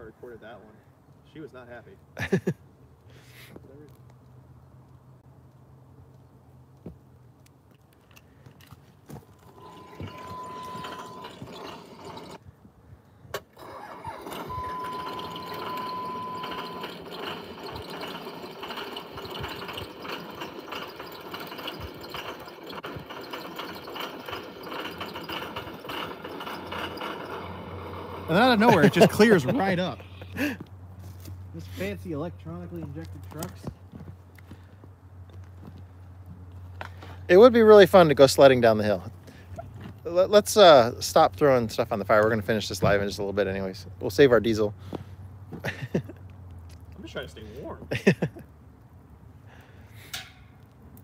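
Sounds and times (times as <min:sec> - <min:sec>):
diesel engine running roughly: 0:09.5 - 0:12.4, 0:14.0 - 0:30.4
steady beep tone: 0:09.5 - 0:12.4, 0:14.4 - 0:17.0.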